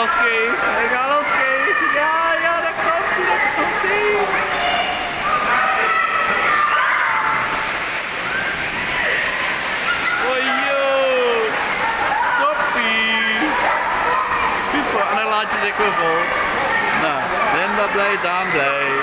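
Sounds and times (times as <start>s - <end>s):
swimmers shouting: 0.0s - 19.0s
water cascading into pool: 0.0s - 19.0s.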